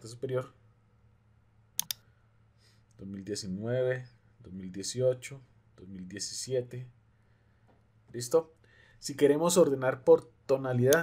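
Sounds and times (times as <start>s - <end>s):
computer mouse double-clicking: 1.8s - 2.0s.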